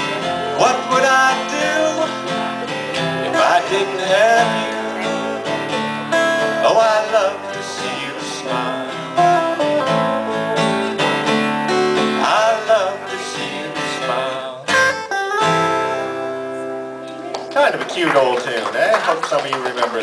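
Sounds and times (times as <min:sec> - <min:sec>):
electric guitar playing: 0:00.0 - 0:18.6
acoustic guitar playing: 0:00.0 - 0:19.1.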